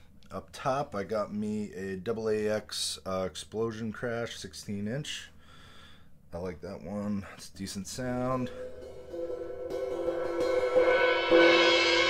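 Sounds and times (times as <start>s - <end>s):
crash cymbal ringing: 8.4s - 12.0s.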